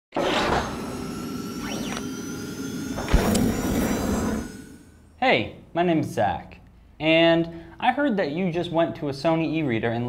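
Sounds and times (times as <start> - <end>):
electronic whooshes: 0.2 - 5.2.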